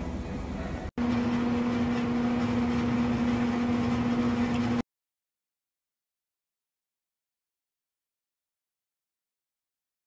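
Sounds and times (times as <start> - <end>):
steady low machine hum: 0.0 - 4.8.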